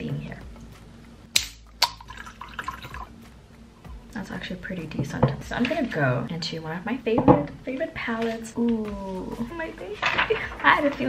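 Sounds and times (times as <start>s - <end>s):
liquid trickling: 1.8s - 3.2s.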